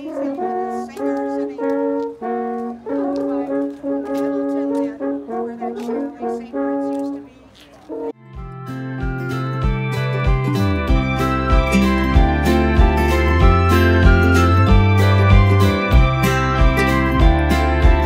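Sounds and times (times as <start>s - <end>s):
alphorns playing slow melody: 7.9s - 18.0s.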